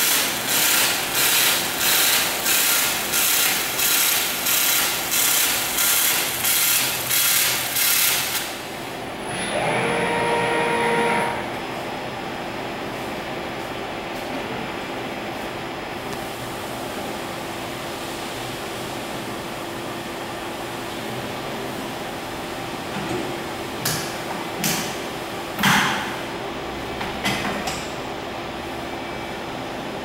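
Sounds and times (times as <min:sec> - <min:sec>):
machinery hum: 0:00.0 - 0:30.0.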